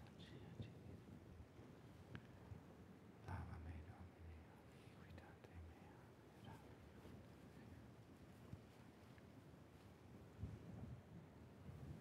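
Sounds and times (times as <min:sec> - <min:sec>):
faint whispering: 0:00.0 - 0:01.0, 0:03.2 - 0:07.9
faint low room hum: 0:00.0 - 0:12.0.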